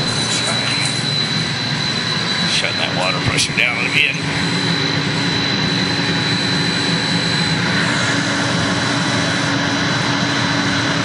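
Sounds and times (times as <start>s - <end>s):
high-pitched whine: 0.0s - 11.0s
water pump motor humming: 0.0s - 11.0s.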